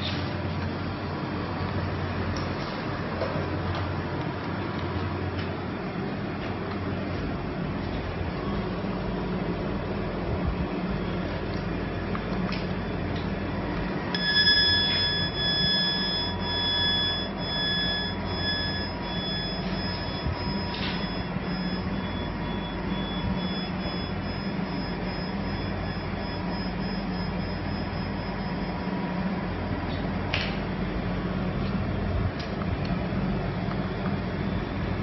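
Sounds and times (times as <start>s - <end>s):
mechanical running hum: 0.0s - 35.0s
thin high whining tones: 14.2s - 29.0s.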